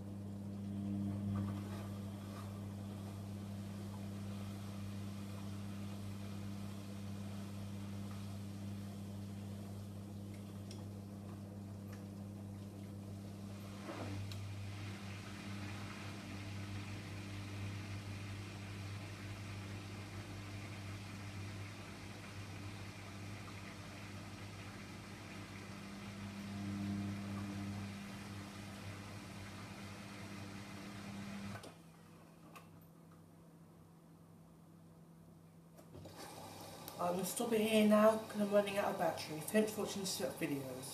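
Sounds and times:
washing machine drain pump humming: 0.0s - 40.9s.

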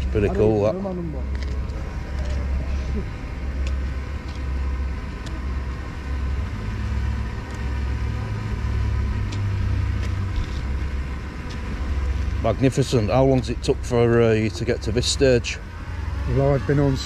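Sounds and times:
engine running: 0.0s - 17.0s.

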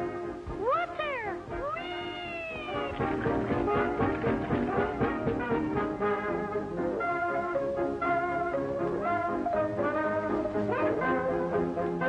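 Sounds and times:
gliding cartoon cries: 0.6s - 3.1s
brassy dance-band music: 1.4s - 12.0s.

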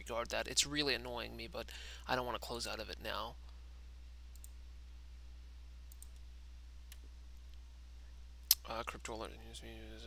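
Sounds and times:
steady low hum: 0.0s - 10.0s
computer mouse clicks: 4.3s - 4.6s, 5.9s - 6.3s.

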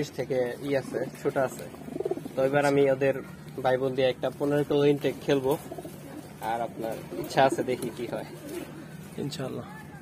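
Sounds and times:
pigeons cooing: 0.0s - 3.4s, 5.0s - 9.4s.

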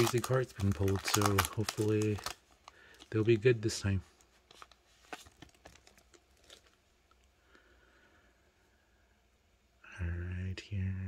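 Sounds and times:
foil pack tearing open: 0.0s - 3.2s.

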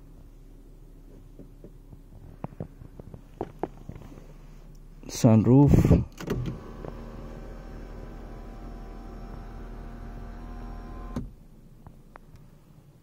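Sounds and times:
sunroof motor humming: 6.2s - 11.3s.

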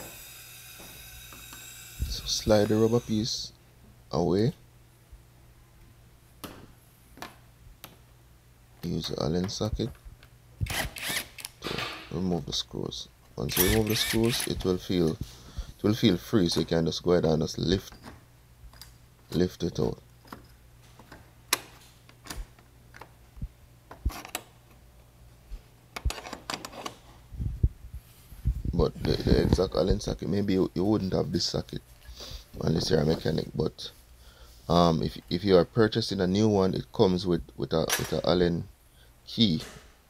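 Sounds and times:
faint low hum: 0.0s - 40.0s.

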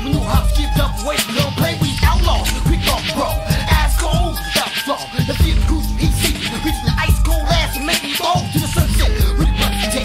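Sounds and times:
rapping over hip hop beat: 0.0s - 10.0s.

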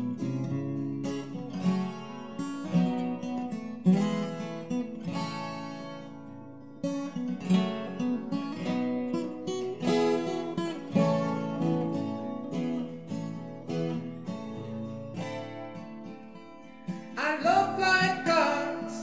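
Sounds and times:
acoustic guitar playing: 0.0s - 19.0s.

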